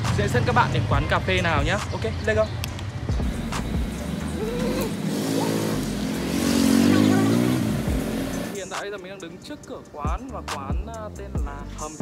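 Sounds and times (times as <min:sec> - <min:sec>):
motorbike engine passing: 0:03.2 - 0:08.6.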